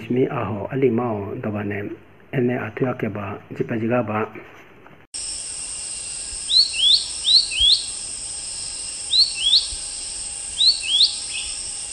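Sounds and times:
high insect drone: 5.2 - 11.9
bird chirping: 6.0 - 11.9.

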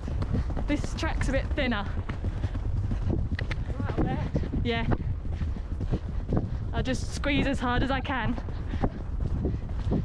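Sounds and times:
horse hoofbeats on grass: 0.0 - 10.0
steady low rumble: 0.0 - 10.0.

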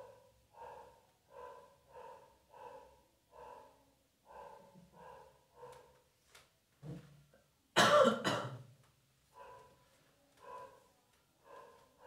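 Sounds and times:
man coughing: 7.8 - 8.7.

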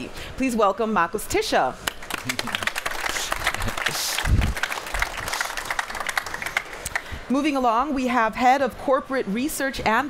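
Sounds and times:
audience applauding: 1.9 - 7.1.

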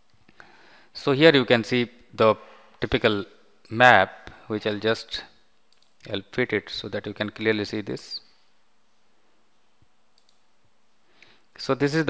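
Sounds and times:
faint room hiss: 0.0 - 12.0
computer mouse clicks: 5.7 - 6.1, 10.1 - 10.5.

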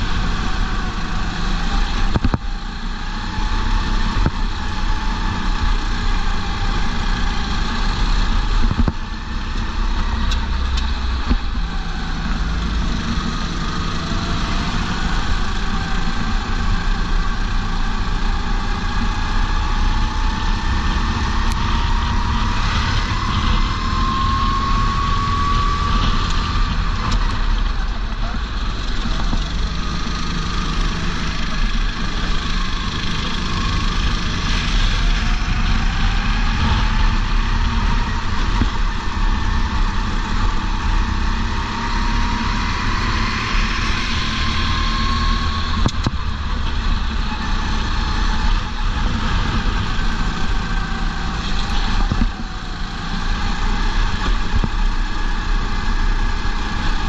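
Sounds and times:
wind rush on microphone: 0.0 - 29.8, 30.8 - 57.0
kart engine accelerating: 0.0 - 57.0.

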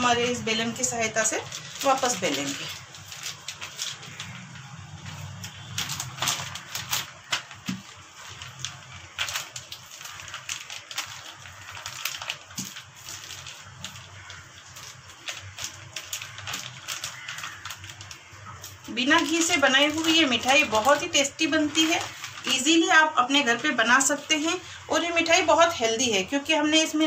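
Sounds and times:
plastic crinkles and clicks: 1.1 - 24.6.

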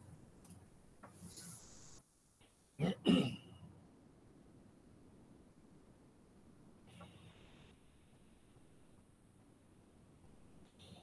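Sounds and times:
person clearing throat: 2.8 - 3.6.

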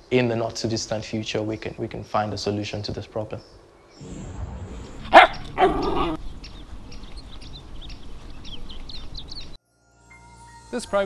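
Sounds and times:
small birds chirping: 0.0 - 4.1, 4.9 - 9.6
outdoor background hiss: 0.0 - 11.0.

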